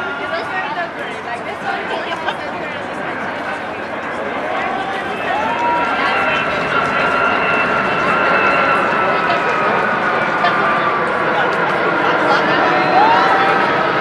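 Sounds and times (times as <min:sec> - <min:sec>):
background chatter of voices: 0:00.0 - 0:14.0
jet engines whining: 0:00.0 - 0:14.0.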